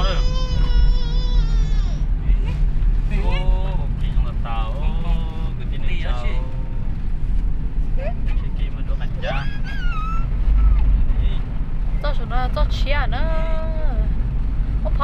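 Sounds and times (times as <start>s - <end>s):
car engine and tyres rumbling: 0.0s - 15.0s.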